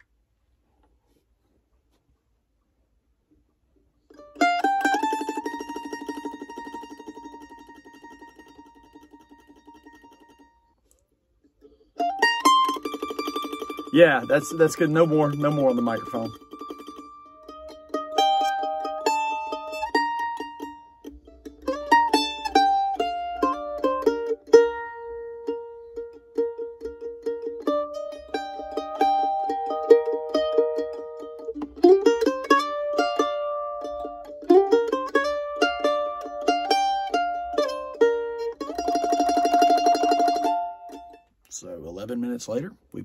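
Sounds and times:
mandolin playing: 4.0 - 41.5.

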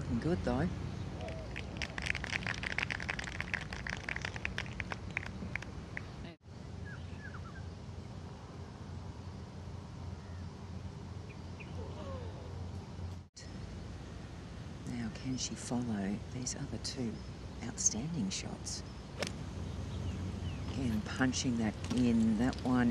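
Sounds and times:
birds chirping: 16.5 - 22.9.

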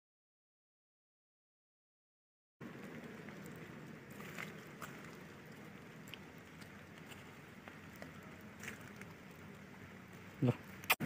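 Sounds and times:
outdoor background noise: 2.6 - 11.0.

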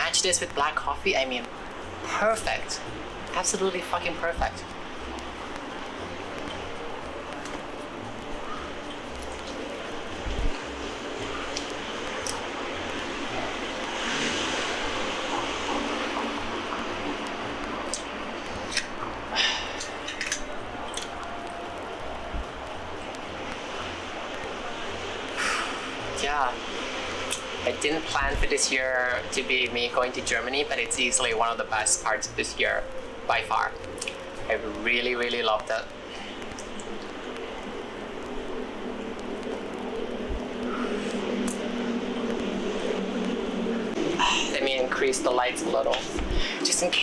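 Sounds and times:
soft hiss: 0.0 - 47.0.

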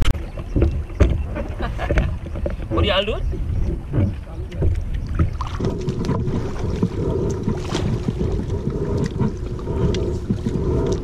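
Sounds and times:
kayak paddling water: 0.0 - 11.0
short water splashes: 0.0 - 11.0
wind rumbling on microphone: 0.0 - 11.0.

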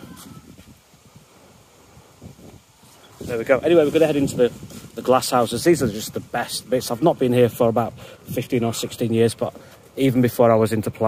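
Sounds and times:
soft rustles: 0.0 - 6.6
wind rumble on microphone: 0.0 - 9.1.

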